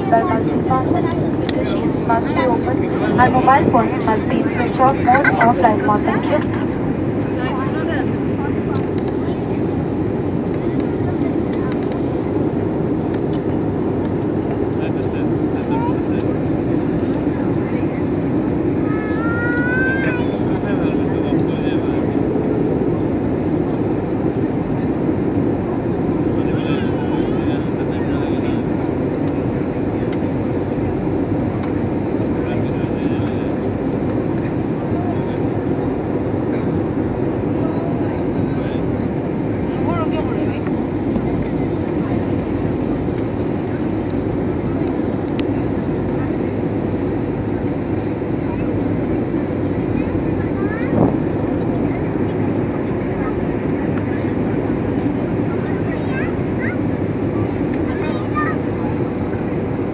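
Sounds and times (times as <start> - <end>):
jet engine and airflow in cabin: 0.0 - 59.9.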